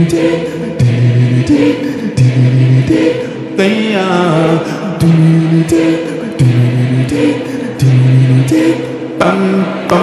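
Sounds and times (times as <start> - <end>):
choir-like singing low notes: 0.0 - 10.0.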